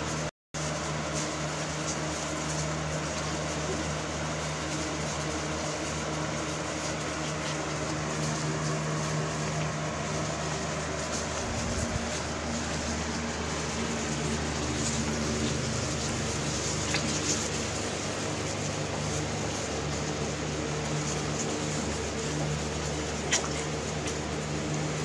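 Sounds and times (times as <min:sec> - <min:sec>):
machine humming: 0:00.0 - 0:25.0.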